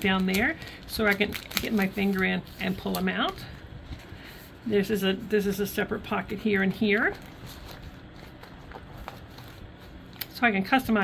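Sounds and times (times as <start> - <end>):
plastic page protector rustling: 0.0 - 4.5, 6.7 - 10.9.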